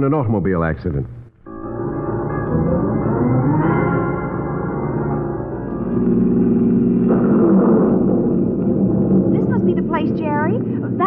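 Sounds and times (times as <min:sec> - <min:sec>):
car engine running: 0:04.8 - 0:11.0.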